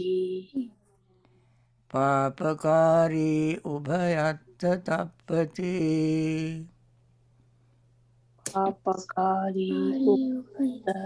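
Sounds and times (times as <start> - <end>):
person chanting verse: 1.9 - 6.7.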